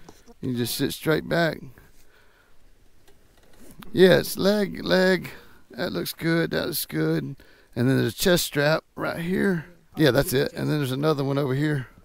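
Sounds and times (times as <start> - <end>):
person speaking: 3.8 - 6.0.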